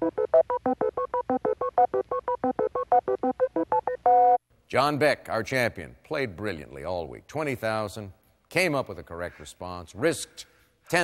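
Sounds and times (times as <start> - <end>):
rapid electronic beeps: 0.0 - 4.4.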